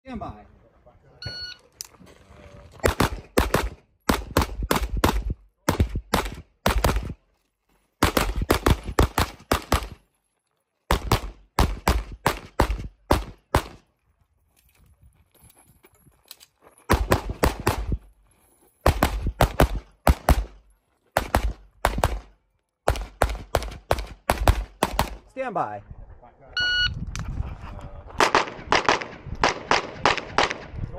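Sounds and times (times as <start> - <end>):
rapid handgun fire: 2.8 - 7.2, 8.0 - 10.0, 16.9 - 18.0, 18.9 - 20.6, 21.2 - 22.3, 22.9 - 25.2, 28.2 - 30.7.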